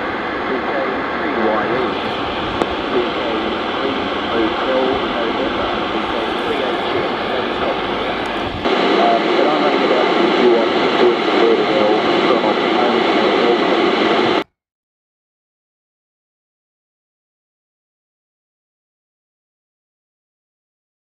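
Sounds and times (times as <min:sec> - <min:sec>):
radio static: 0:00.0 - 0:14.4.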